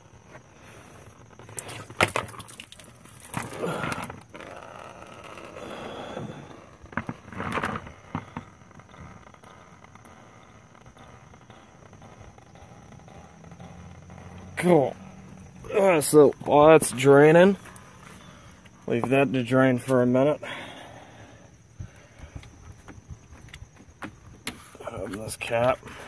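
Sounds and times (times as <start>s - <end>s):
coolant draining into pan: 1.4s - 4.4s.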